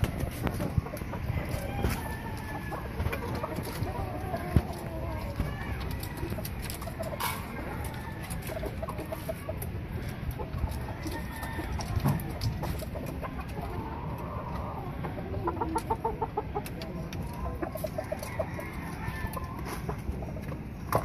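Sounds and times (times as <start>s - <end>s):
roosters clucking: 0.0s - 21.0s.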